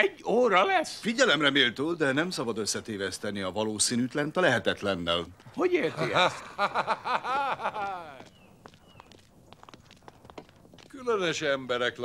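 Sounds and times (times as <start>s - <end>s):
footsteps on dirt path: 4.7s - 12.0s
high falling chirps: 6.2s - 10.0s.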